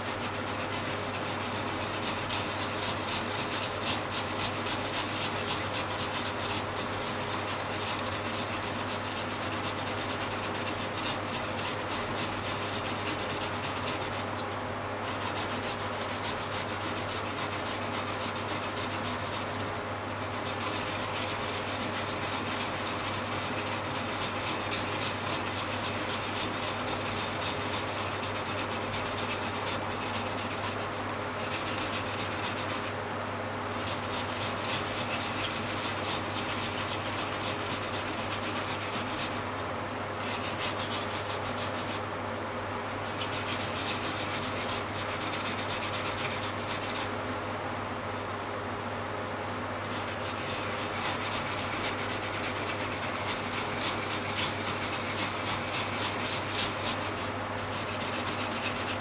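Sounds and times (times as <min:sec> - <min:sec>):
yam rasping on a grater: 0:00.0 - 0:33.0, 0:33.7 - 0:42.1, 0:42.8 - 0:47.2, 0:49.8 - 0:59.0.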